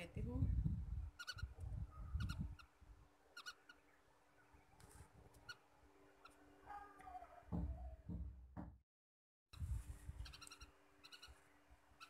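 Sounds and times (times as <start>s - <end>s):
faint bird chirps: 1.1s - 4.8s, 10.2s - 12.0s.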